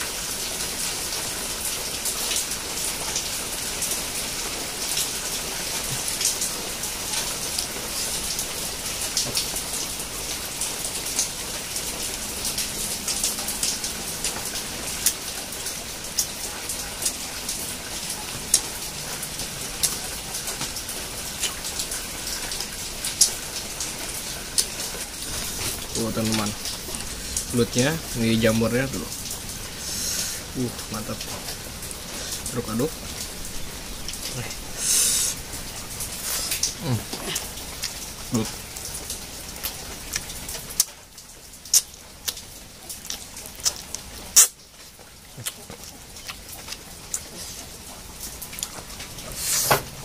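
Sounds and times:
raindrops ticking: 0.0 - 50.0
steady rainfall: 0.0 - 50.0.

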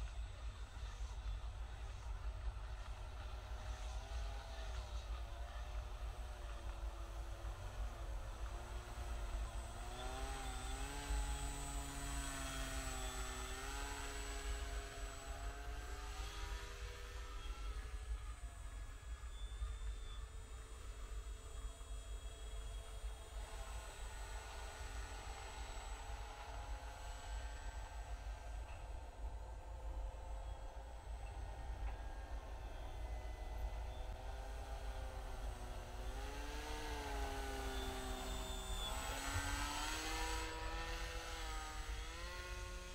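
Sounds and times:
model aircraft motor humming: 0.0 - 42.9.

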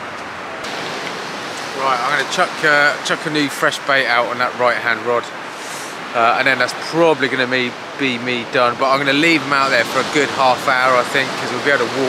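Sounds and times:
sea surf washing on beach: 0.0 - 12.0.

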